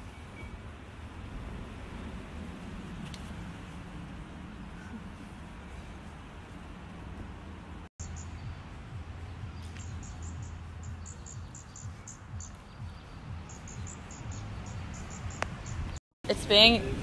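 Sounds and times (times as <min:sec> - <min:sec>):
high insect chirps: 0:08.0 - 0:16.0.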